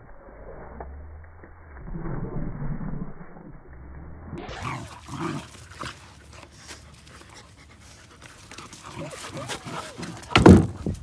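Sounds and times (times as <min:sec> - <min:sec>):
dog panting: 0:06.3 - 0:10.3.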